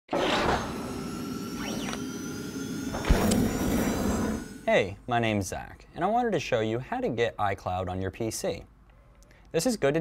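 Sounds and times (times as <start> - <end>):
steady electronic tones: 0.6 - 5.3.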